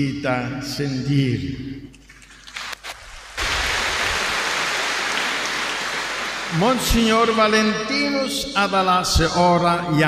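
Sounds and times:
congregation applauding: 2.4s - 8.1s.

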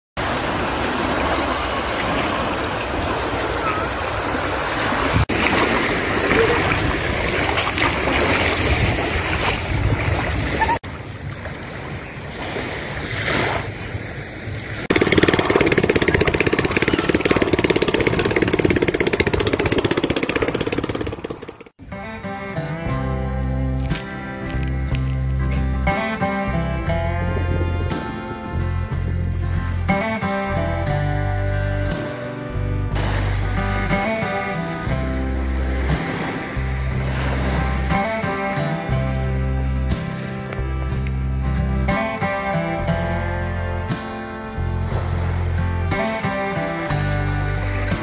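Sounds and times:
small waves washing on beach: 0.2s - 21.1s, 32.9s - 38.8s
small boat engine running: 14.8s - 21.8s, 33.0s - 40.2s, 44.7s - 48.0s.

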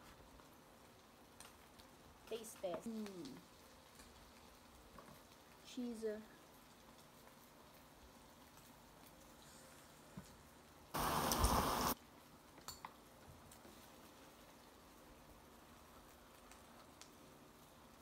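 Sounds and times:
burst of hissing noise: 11.0s - 12.0s.

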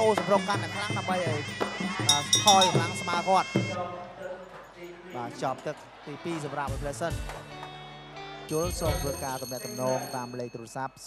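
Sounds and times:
commentator speaking: 0.0s - 7.2s, 8.5s - 11.0s.

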